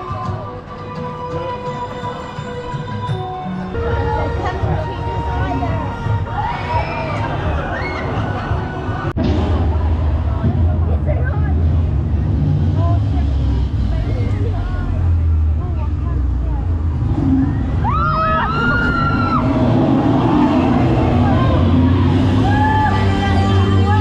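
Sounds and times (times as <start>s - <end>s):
rushing noise of descending ride: 4.0s - 15.1s, 17.0s - 24.0s
high rising screams: 6.3s - 9.1s, 17.1s - 23.2s.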